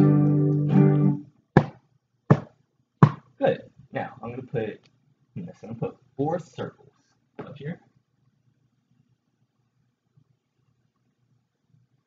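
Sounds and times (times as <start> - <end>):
acoustic guitar chord strummed: 0.0 - 1.2.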